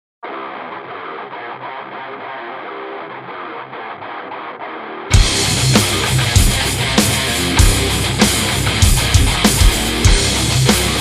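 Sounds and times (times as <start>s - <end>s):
filtered metal guitar riff: 0.2s - 11.0s.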